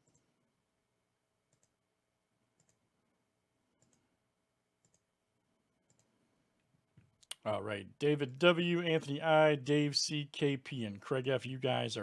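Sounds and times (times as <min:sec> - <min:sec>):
computer mouse clicks: 0:00.0 - 0:00.3, 0:01.5 - 0:01.8, 0:02.6 - 0:02.8, 0:03.8 - 0:04.1, 0:04.8 - 0:05.1, 0:05.8 - 0:06.2.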